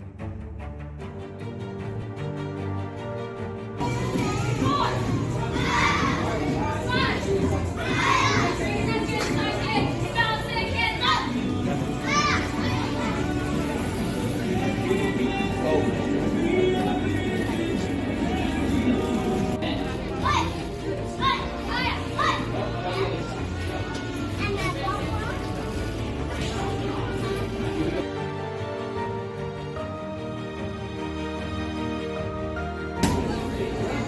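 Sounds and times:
background music: 0.0 - 34.0
children calling out: 3.8 - 8.9, 10.7 - 13.5
children talking and calling out: 3.8 - 17.2, 18.6 - 28.0.

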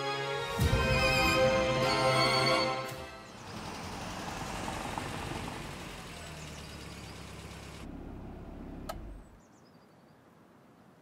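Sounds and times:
engine and tyre noise: 3.2 - 9.5.

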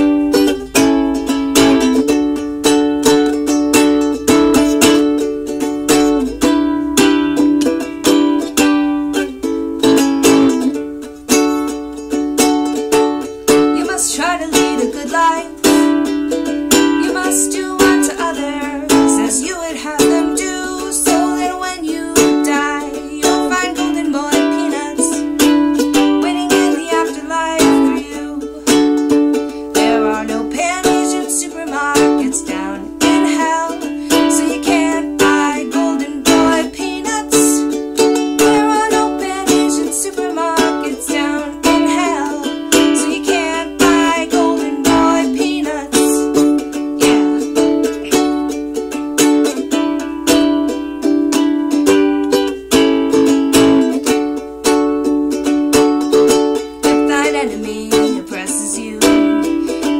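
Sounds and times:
ukulele strumming: 0.0 - 59.9.

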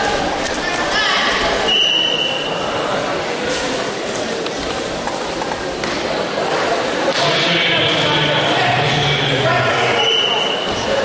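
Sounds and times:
crowd din in sports hall: 0.0 - 11.0.

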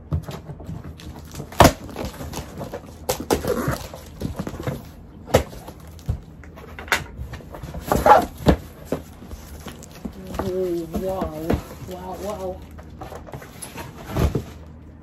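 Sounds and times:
cardboard and paper rustling: 0.0 - 15.0.

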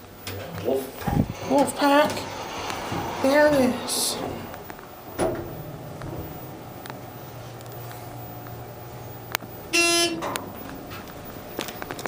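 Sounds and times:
elevator hum: 0.0 - 12.0
elevator knock: 1.0 - 8.7.

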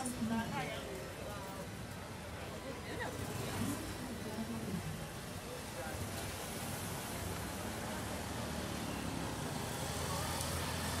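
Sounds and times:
murmur of crowd voices: 0.0 - 11.0
traffic noise: 0.0 - 11.0.

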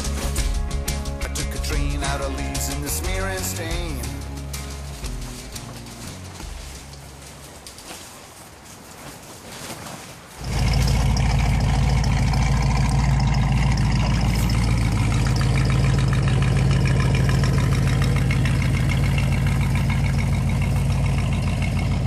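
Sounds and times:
car engine idling: 0.0 - 8.1, 10.4 - 22.0.

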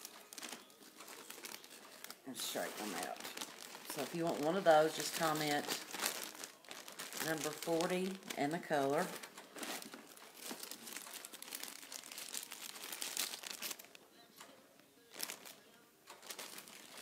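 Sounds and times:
plastic bag crinkling: 0.0 - 14.0, 15.0 - 17.0.

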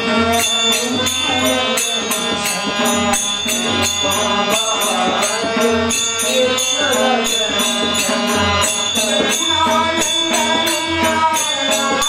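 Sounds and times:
men singing devotional song: 0.0 - 12.0
tabla drumming: 0.0 - 12.0
small hand cymbals striking: 0.3 - 12.0.

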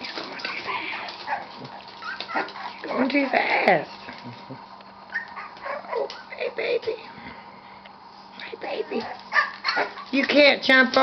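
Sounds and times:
puppies whimpering and yipping: 0.0 - 3.3, 5.1 - 6.4.

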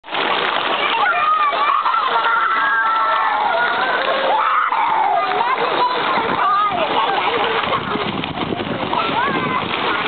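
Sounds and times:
pool water splashing: 0.0 - 10.0
children calling out: 0.6 - 8.0, 8.8 - 10.0.

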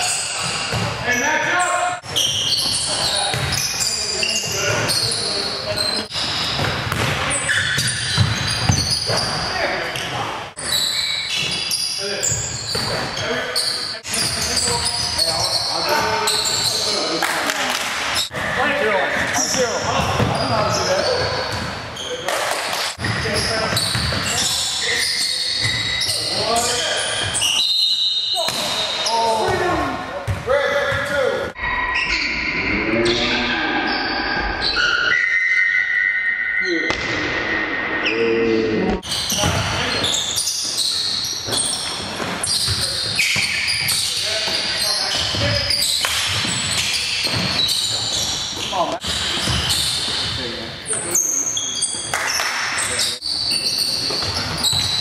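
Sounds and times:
basketball bouncing on wooden floor: 0.7 - 1.0, 6.3 - 7.2, 7.8 - 9.3, 23.7 - 24.2, 29.5 - 31.0.

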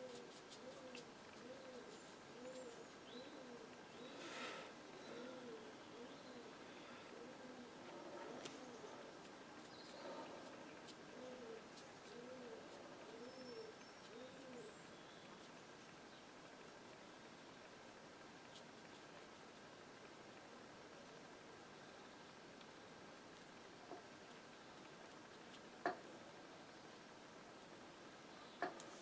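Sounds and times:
faint high bird chirps: 13.1 - 15.4.

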